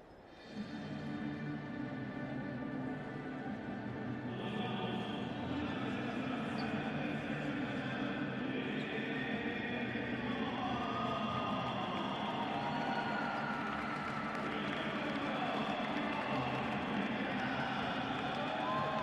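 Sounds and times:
crowd murmur in a hall: 0.0 - 19.0.

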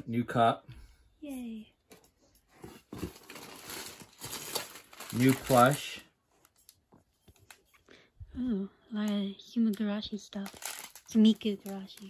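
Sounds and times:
packaging crinkling and rustling: 2.6 - 7.7, 10.4 - 12.0.

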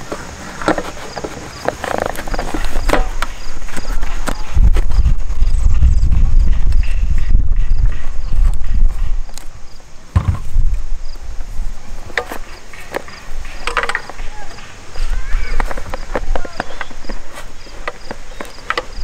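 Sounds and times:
wind rumble on microphone: 3.4 - 12.1.

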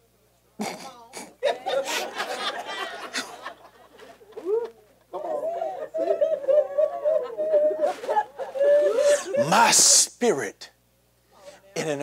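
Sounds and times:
person vocalizing ooh: 6.0 - 9.5.

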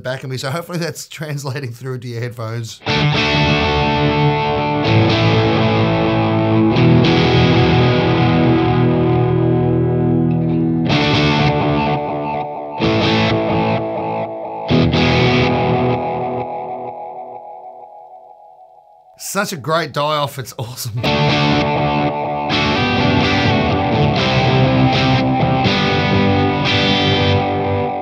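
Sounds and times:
overdriven electric guitar chords: 2.8 - 19.2, 21.0 - 28.0.

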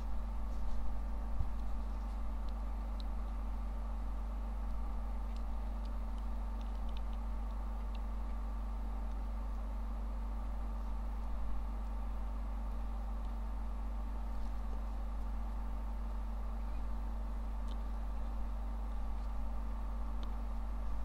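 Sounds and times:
low electrical hum and hiss: 0.0 - 21.0.

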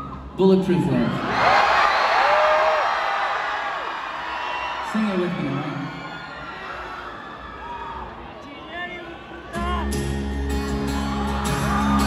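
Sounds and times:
crowd voices and whoops: 0.0 - 0.4, 1.0 - 12.0
acoustic guitar chords: 9.6 - 12.0.

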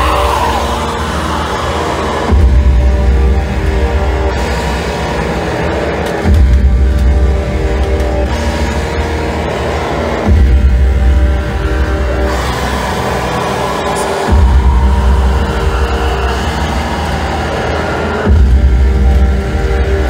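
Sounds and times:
heavy low bass swell: 14.1 - 20.0.

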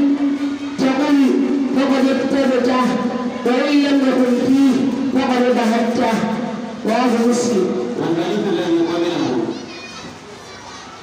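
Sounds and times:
boy speaking into microphone: 0.0 - 11.0
children chattering: 7.9 - 11.0.

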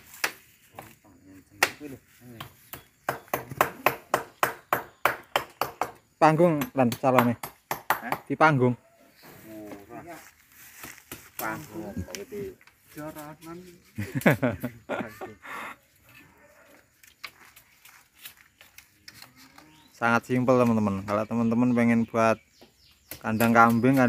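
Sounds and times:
bamboo slats knocking: 1.6 - 8.4
voices talking: 6.2 - 10.6, 11.2 - 16.9, 18.8 - 24.0.

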